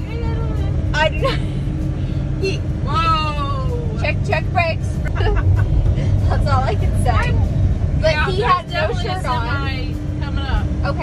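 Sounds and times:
women talking: 0.0s - 1.6s, 2.4s - 11.0s
truck engine and road rumble: 0.0s - 11.0s.

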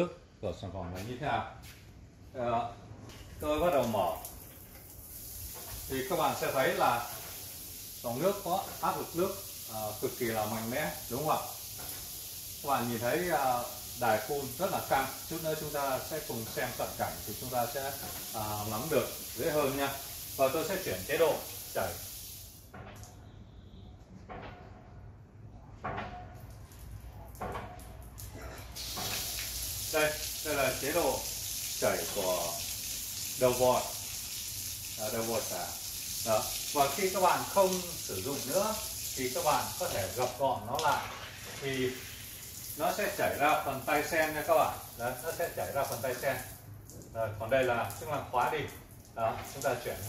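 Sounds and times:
shower water hissing: 3.4s - 22.7s, 28.7s - 46.8s, 47.5s - 50.0s.

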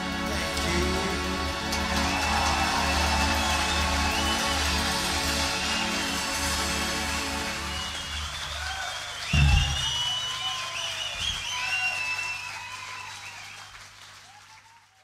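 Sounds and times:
crowd cheering and whistling: 0.0s - 15.0s
rock band playing: 9.4s - 10.2s.

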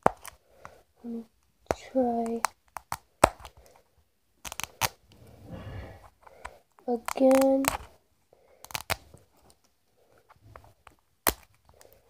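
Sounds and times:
plastic toy ball clicking: 6.4s - 7.9s.

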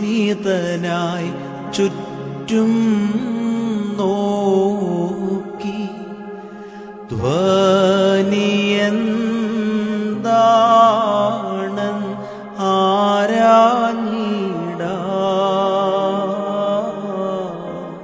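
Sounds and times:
keyboard accompaniment: 0.0s - 18.0s
man singing devotional song: 0.0s - 18.0s.

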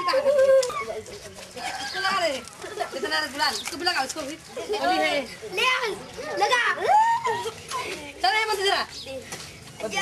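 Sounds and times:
children shouting and squealing: 0.0s - 3.3s, 4.5s - 9.4s.

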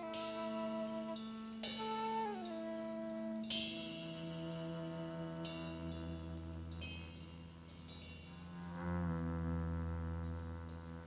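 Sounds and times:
low sustained instrument note: 0.0s - 11.0s
struck metal percussion ringing: 3.6s - 8.6s.

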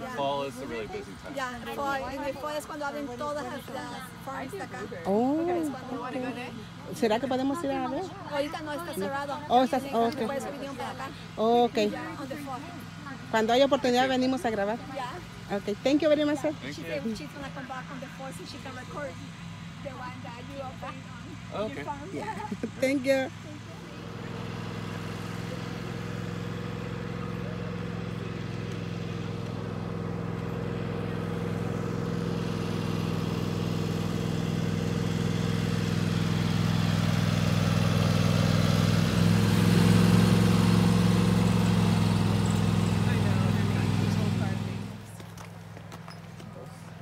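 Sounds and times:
engine running steadily: 0.0s - 47.0s.

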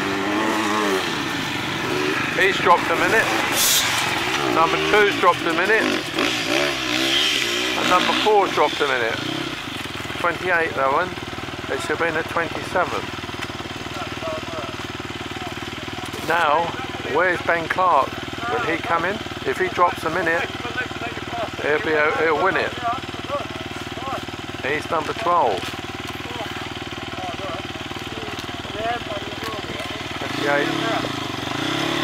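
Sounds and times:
motorcycle engine running: 0.0s - 32.0s.

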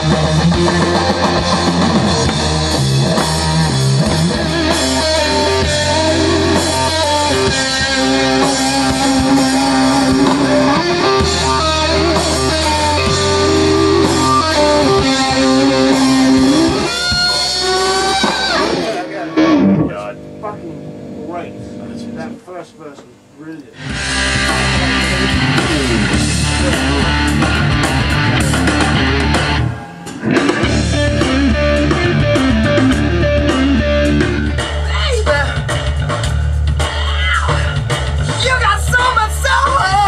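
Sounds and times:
electric guitar held notes: 0.0s - 21.2s, 23.8s - 34.7s
guitar slide: 0.0s - 21.2s, 23.7s - 35.2s
rock backing track: 0.0s - 40.0s.

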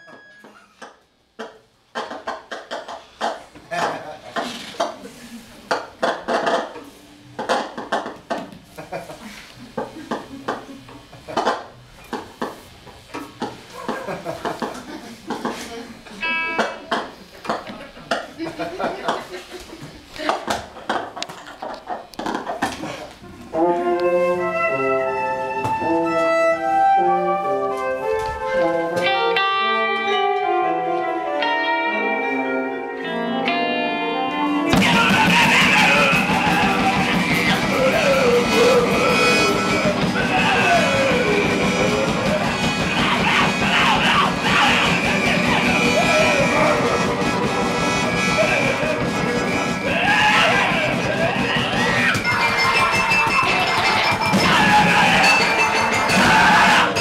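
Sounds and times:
held pitched notes: 23.2s - 57.0s
full band playing loudly: 23.7s - 57.0s
scattered clicks and knocks: 50.7s - 56.3s.

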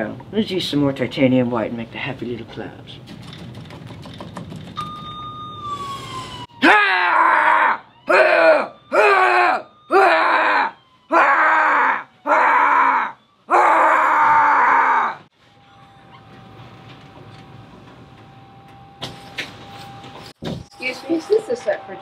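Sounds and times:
person crying out: 6.6s - 15.2s.

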